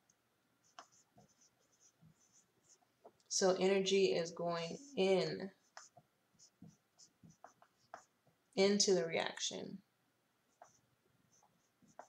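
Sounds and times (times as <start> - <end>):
marker pen writing on whiteboard: 0.6 - 8.5, 10.5 - 12.0.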